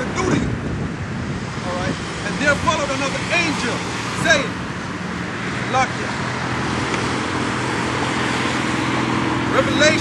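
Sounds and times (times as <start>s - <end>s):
passing vehicles: 0.0s - 10.0s.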